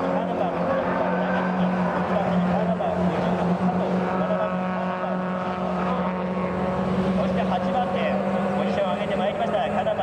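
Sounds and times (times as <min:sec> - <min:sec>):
race car engines at high revs: 0:00.0 - 0:10.0.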